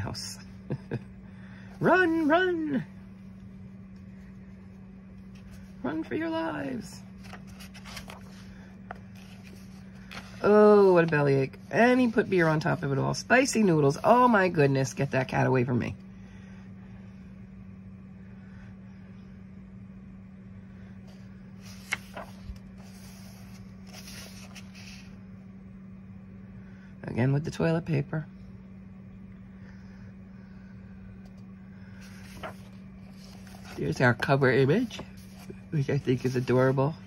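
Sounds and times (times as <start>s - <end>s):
steady low hum: 0.0s - 37.0s
paper page turning: 6.8s - 11.0s, 21.6s - 25.2s, 32.0s - 36.8s.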